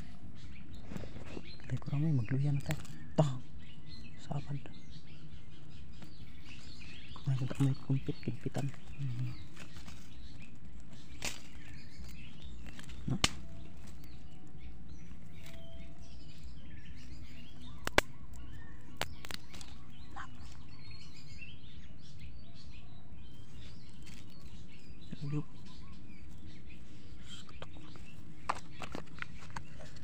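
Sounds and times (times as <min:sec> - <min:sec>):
birds chirping faintly: 0:00.0 - 0:30.0.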